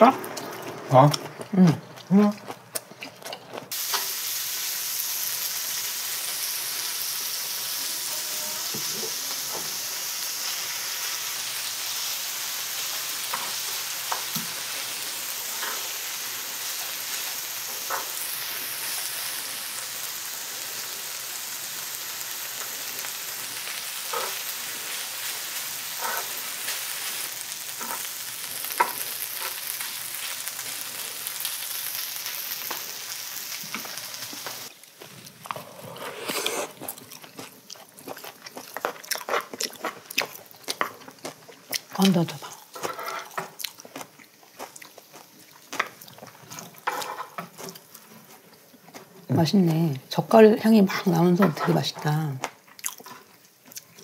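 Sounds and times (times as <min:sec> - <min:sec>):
food sizzling on a grill plate: 0:03.7 - 0:35.1, 0:44.3 - 0:48.2
utensils scraping a grill plate: 0:26.0 - 0:26.7, 0:42.8 - 0:43.5.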